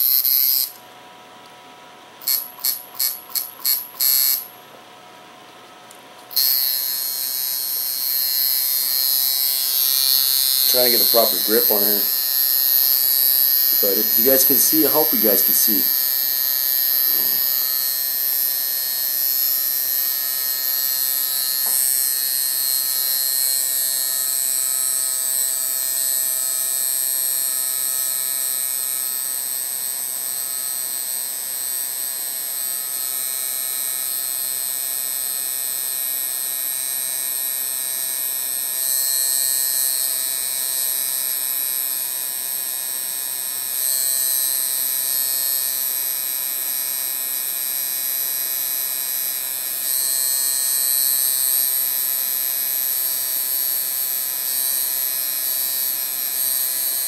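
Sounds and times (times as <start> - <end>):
tattoo machine buzzing: 0.0 - 0.9, 2.2 - 4.7, 6.2 - 57.0.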